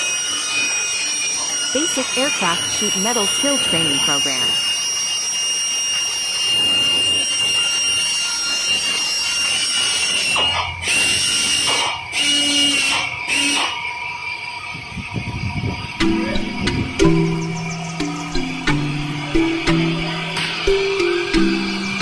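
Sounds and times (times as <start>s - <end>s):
pneumatic drill whining: 0.0s - 22.0s
harsh noise bursts: 1.8s - 4.8s.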